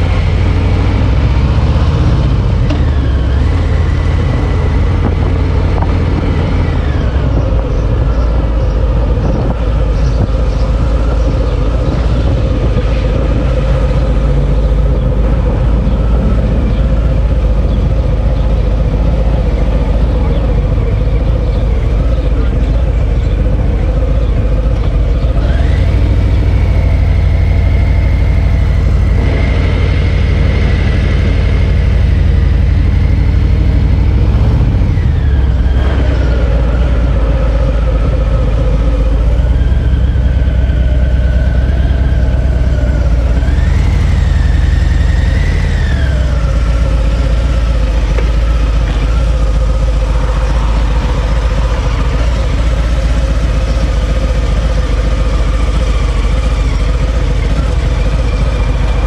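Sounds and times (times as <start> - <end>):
motorcycle engine rumbling: 0.0 - 59.0.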